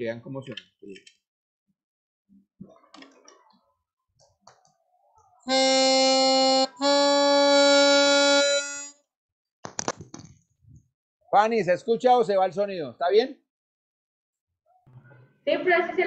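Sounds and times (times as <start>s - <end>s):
melodica playing held notes: 5.5s - 9.0s.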